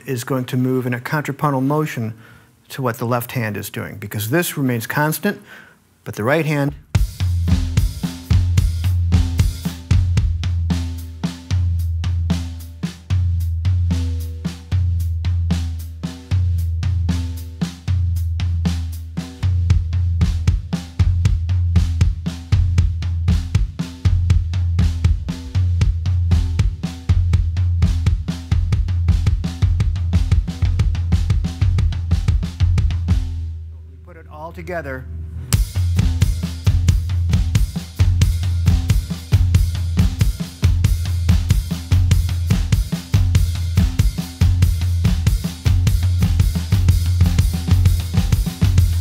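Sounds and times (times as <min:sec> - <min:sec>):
drum kit playing: 0:06.2 - 0:49.0.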